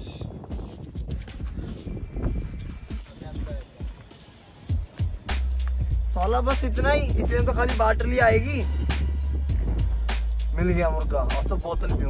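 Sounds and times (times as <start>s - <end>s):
background music: 0.5s - 12.0s.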